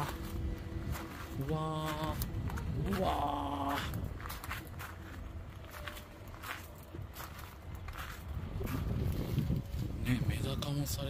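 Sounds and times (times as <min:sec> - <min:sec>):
footsteps on loose gravel: 0:00.0 - 0:11.0.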